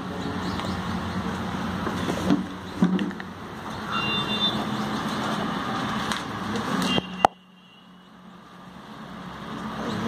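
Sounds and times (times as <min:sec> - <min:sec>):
rushing background noise: 0:00.0 - 0:10.0.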